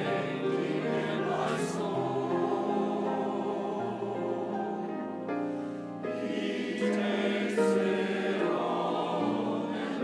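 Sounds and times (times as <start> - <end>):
church choir singing in parts: 0.0 - 5.1, 6.0 - 10.0.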